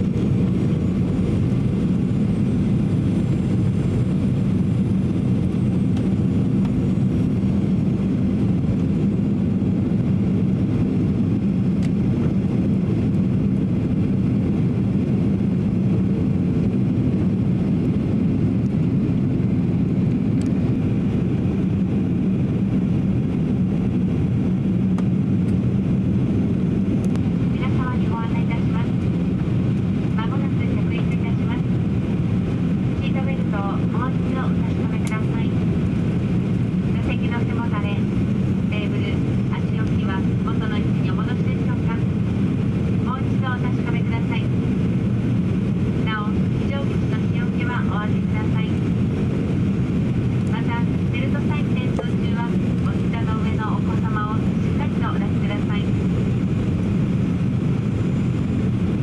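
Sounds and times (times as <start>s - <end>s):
airplane cabin airflow rush: 0.0s - 59.0s
jet engine hum: 0.0s - 59.0s.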